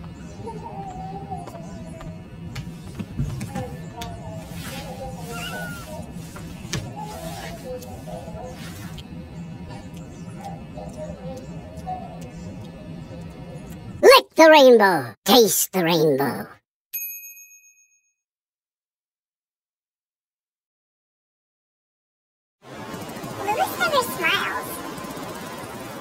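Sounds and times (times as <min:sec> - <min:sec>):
cat call: 0:05.2 - 0:06.1.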